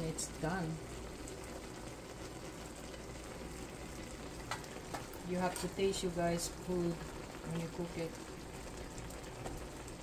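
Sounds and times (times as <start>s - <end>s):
broth bubbling in a wok: 0.0s - 10.0s.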